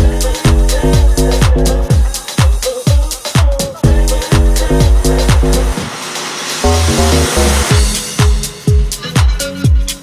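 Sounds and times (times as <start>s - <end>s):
kick drum: 0.0s - 6.0s, 7.7s - 10.0s
tech-house track: 0.0s - 10.0s
wash of noise: 4.9s - 7.8s.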